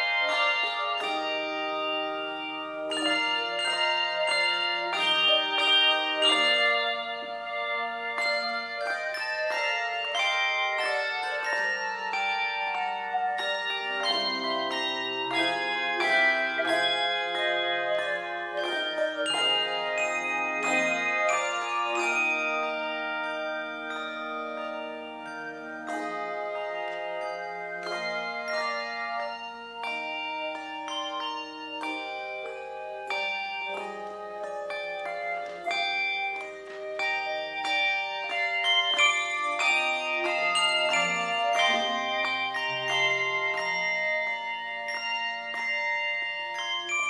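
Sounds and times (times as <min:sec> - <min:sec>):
handbell choir playing chords: 0:00.0 - 0:47.0.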